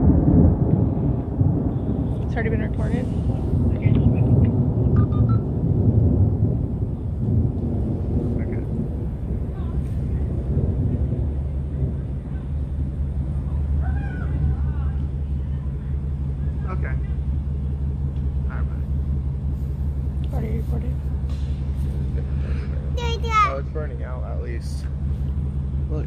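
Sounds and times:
low rumble of thunder: 0.0 - 26.0.

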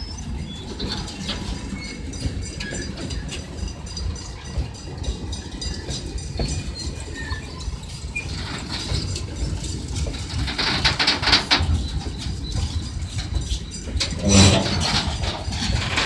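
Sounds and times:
freight train rolling past: 0.0 - 16.0
rapid train clatter: 0.0 - 16.0.

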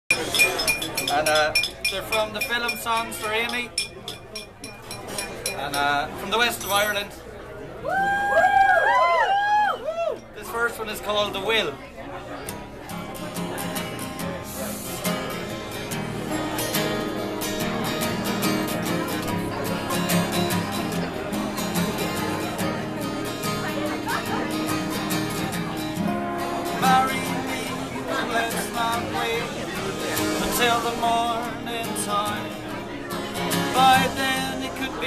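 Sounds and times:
acoustic guitar playing: 0.1 - 7.2, 12.3 - 35.0.

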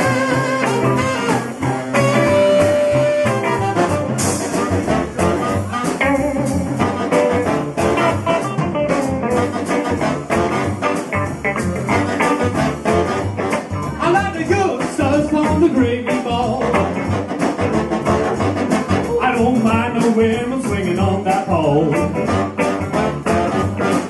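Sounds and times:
saxophone: 0.0 - 14.1, 16.6 - 19.6, 22.0 - 24.0
drum kit: 0.0 - 24.0
electric guitar: 0.0 - 24.0
horn: 0.0 - 24.0
upright double bass: 0.0 - 24.0.

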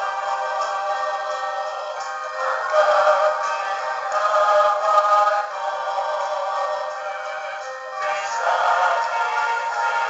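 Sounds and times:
worship song with held chords: 0.0 - 10.0.

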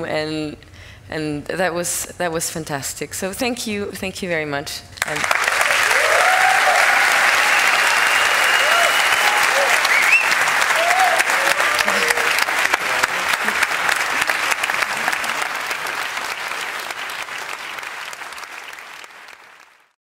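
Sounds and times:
audience applauding: 5.0 - 20.0
audience cheering: 5.2 - 19.7
whistle: 7.6 - 10.4.

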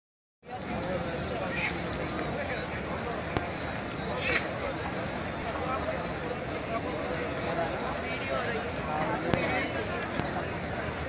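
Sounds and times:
crowd talking: 0.4 - 11.0.

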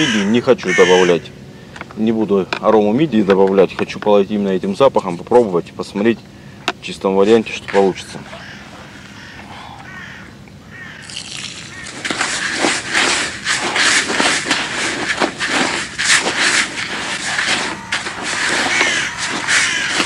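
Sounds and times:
hand mixing groundbait in bucket: 11.0 - 20.0.

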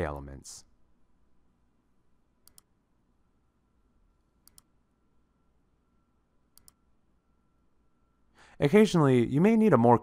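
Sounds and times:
computer mouse clicks: 2.4 - 2.7, 4.4 - 4.8, 6.5 - 6.9.

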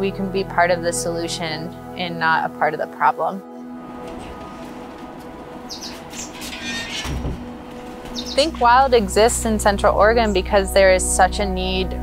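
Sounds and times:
soft background music: 0.0 - 12.0
high bird chirps: 5.3 - 8.7.

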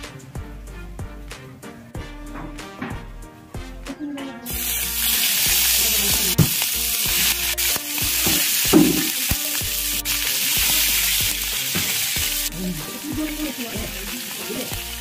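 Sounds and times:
meat sizzling in hot oil: 4.4 - 15.0.

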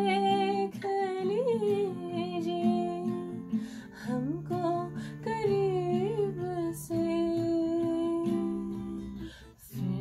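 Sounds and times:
acoustic guitar plucked softly: 0.0 - 10.0
woman singing long held notes: 0.0 - 10.0.

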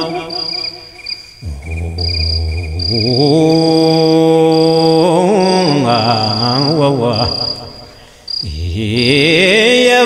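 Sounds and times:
high pulsing chirping: 0.0 - 9.8
man chanting: 0.0 - 10.0.

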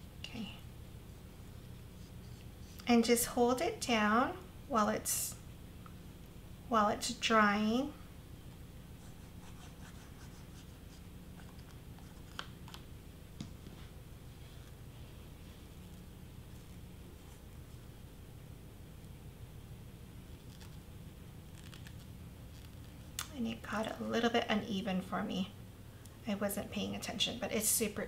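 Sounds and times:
low room hum: 0.0 - 28.0
paper wrapper clicks and rustles: 21.5 - 23.0.

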